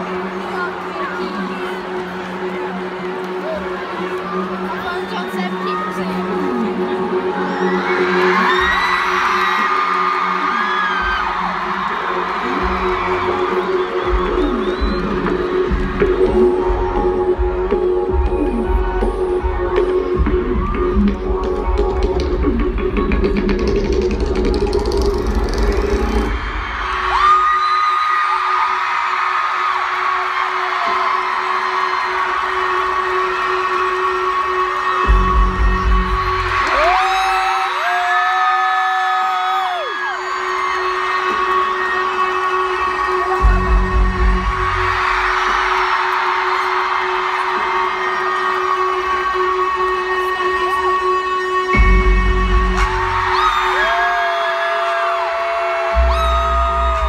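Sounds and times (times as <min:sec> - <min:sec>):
crowd cheering and screaming: 0:00.0 - 0:57.0.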